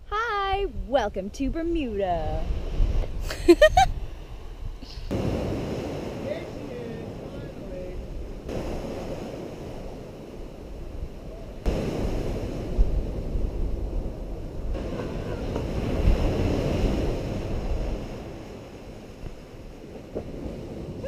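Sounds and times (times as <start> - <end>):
wind buffeting microphone: 0.0 - 21.0
surf breaking on beach: 5.1 - 21.0.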